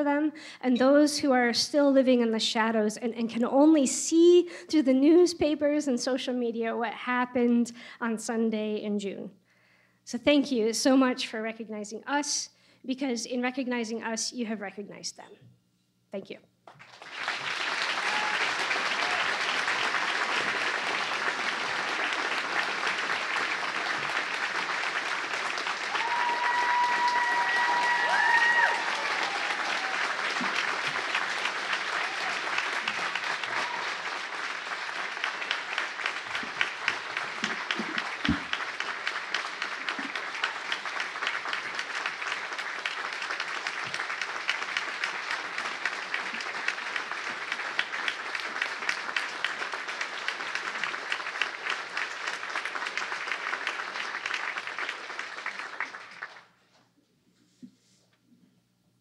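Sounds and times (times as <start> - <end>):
audience applauding: 16.7 - 56.6.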